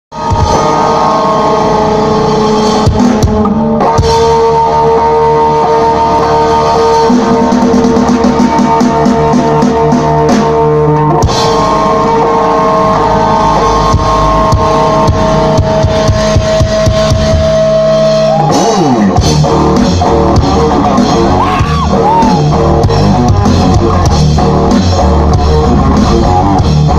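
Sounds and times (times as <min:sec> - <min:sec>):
drum kit: 0:00.1 - 0:26.9
electric guitar sustained notes: 0:00.1 - 0:26.9.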